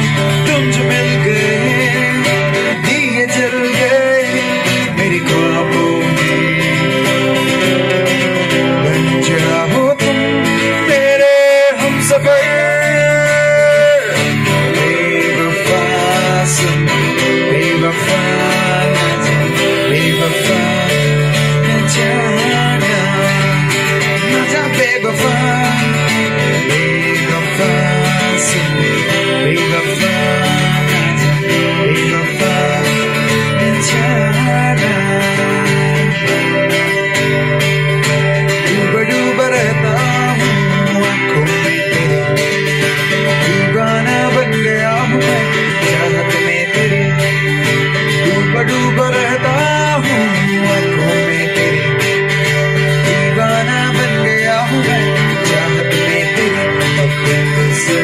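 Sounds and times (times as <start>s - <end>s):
live acoustic guitar band: 0.0s - 58.0s.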